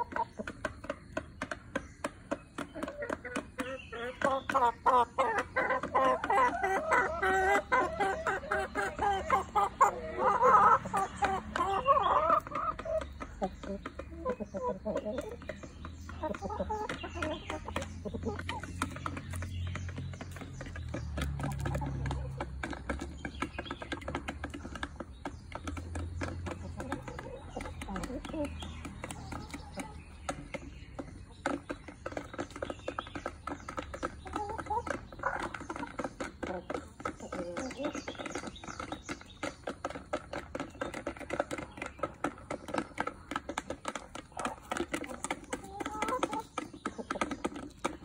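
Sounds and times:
beaks clicking on plastic bowls: 0.0s - 48.0s
chickens clucking: 0.0s - 48.0s.

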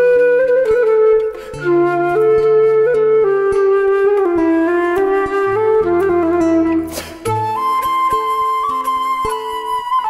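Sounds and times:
flute playing slow melody: 0.0s - 10.0s.

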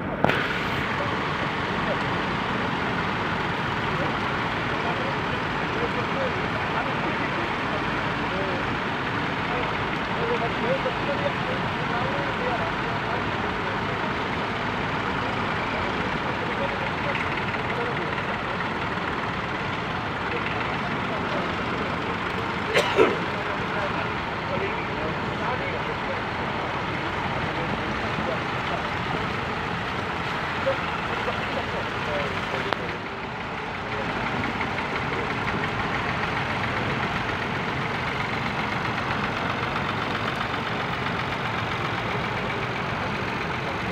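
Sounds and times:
onlookers' voices: 0.0s - 43.9s
tractor engines running: 0.0s - 43.9s.

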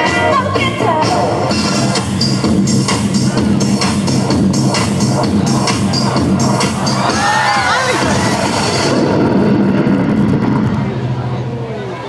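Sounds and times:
loud dance music: 0.0s - 10.7s
murmur of outdoor crowd: 0.0s - 12.0s
steady low rumble: 1.4s - 12.0s.

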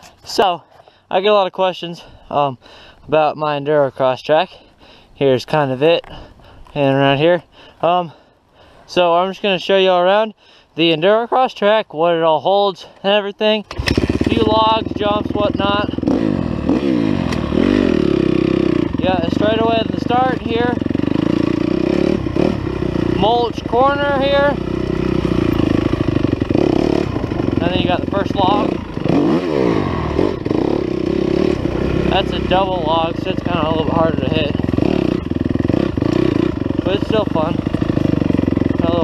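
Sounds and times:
dirt bike engine under throttle: 13.6s - 39.0s
man's voice: 14.2s - 16.0s, 19.0s - 20.8s, 23.2s - 24.6s, 27.6s - 28.8s, 32.1s - 34.6s, 36.8s - 37.6s, 38.8s - 39.0s.

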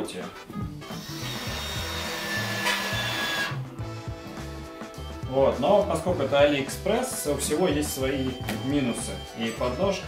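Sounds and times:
electric motor whining: 0.9s - 3.6s.

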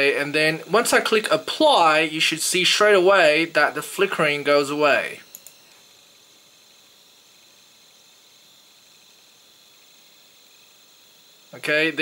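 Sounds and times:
faint high-pitched whine: 0.0s - 12.0s
steady hiss: 0.0s - 12.0s.

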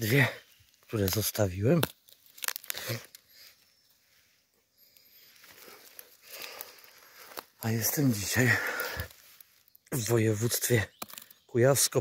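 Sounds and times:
leaf litter crackling and rustling: 0.9s - 3.5s.

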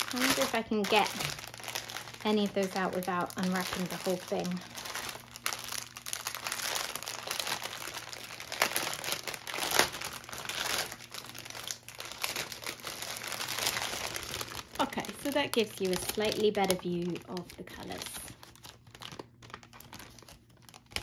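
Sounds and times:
plastic wrapping crinkling: 0.0s - 21.0s.

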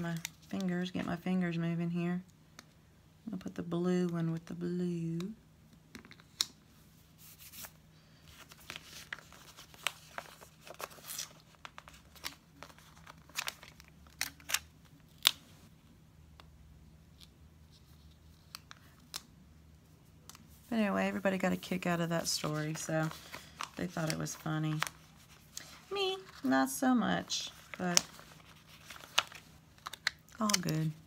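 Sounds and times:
stickers peeling and crinkling: 8.4s - 15.6s, 21.1s - 31.0s.

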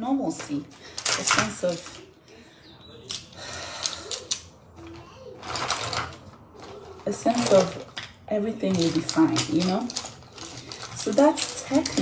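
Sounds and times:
brush handles clicking: 3.1s - 12.0s.

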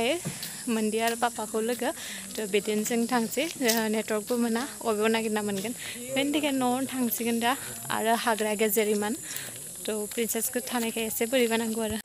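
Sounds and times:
high-pitched hiss: 0.0s - 12.0s
woman talking: 0.0s - 12.0s.

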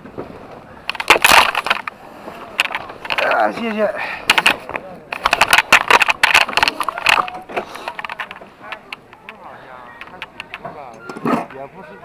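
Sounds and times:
sled rattling on metal track: 0.0s - 12.0s
faint voices: 0.3s - 12.0s.

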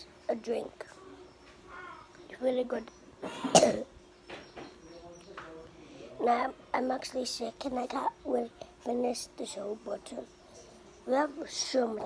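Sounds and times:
child coughing: 3.2s - 3.9s.

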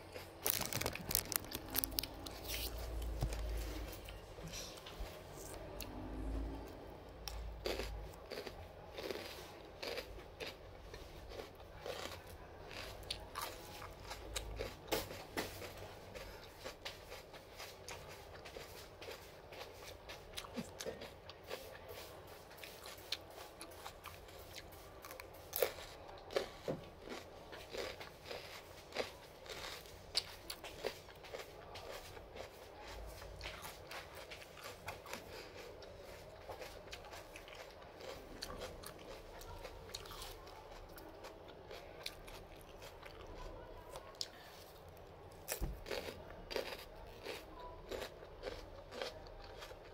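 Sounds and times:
person chewing crunchy food: 0.0s - 49.9s.

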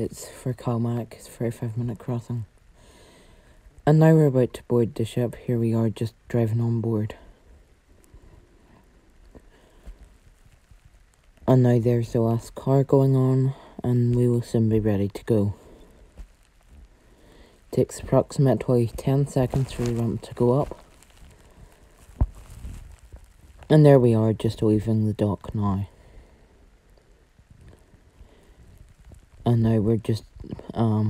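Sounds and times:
faint low rumble: 0.0s - 31.0s.

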